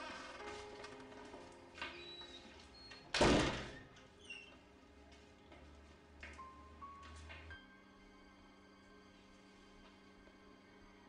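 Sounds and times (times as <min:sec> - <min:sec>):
wooden door thudding shut: 0:03.1 - 0:03.9.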